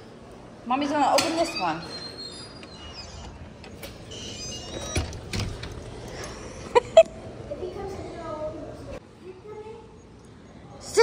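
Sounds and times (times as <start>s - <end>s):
glass doors opening: 1.1s - 6.5s
door hardware clicks: 2.6s - 6.4s.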